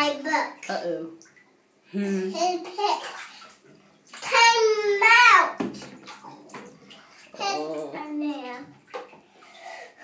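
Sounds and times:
water sloshing in bathtub: 0:00.0 - 0:10.0
knocks in bathtub: 0:05.4 - 0:06.8.

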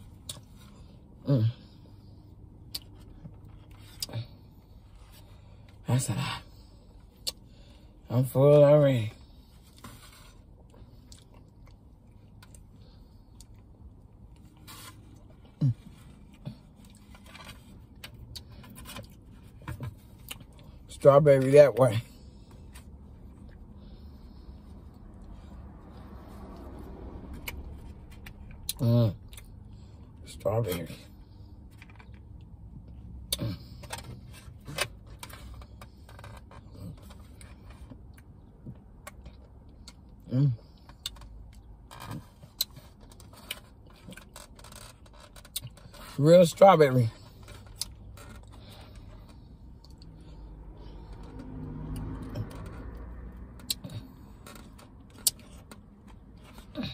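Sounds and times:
low steady hum: 0:00.0 - 0:56.9.

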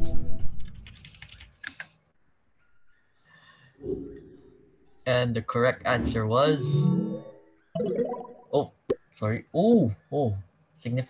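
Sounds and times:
computer keyboard clicks: 0:00.7 - 0:01.9.

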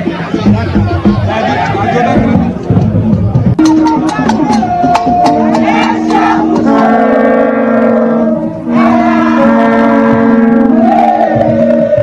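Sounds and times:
women chanting: 0:04.8 - 0:12.0.

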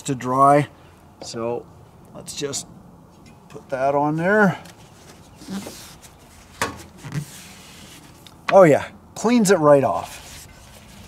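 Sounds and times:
cloth rubbing on rubber: 0:04.7 - 0:08.2, 0:10.0 - 0:11.0.

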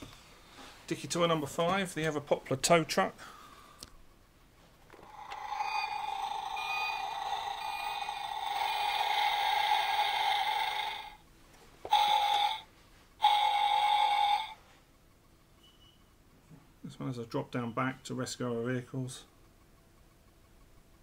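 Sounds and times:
toy truck electronic tone: 0:05.0 - 0:11.2, 0:11.9 - 0:14.6.

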